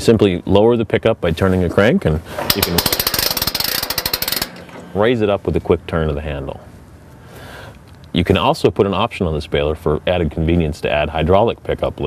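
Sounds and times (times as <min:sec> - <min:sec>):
hand crank clicking: 0:02.4 - 0:05.0.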